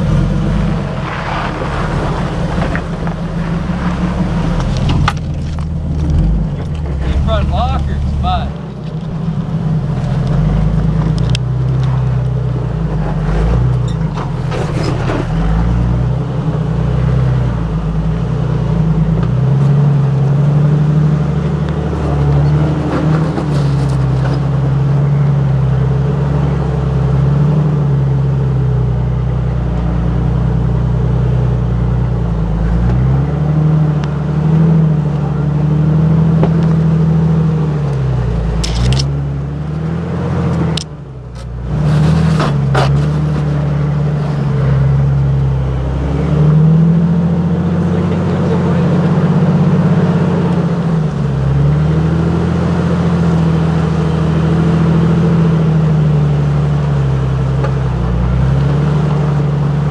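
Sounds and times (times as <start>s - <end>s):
car engine running at low revs: 0.0s - 59.9s.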